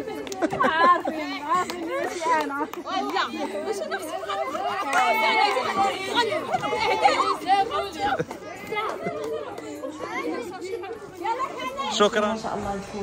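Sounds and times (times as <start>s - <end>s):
women chattering: 0.0s - 13.0s.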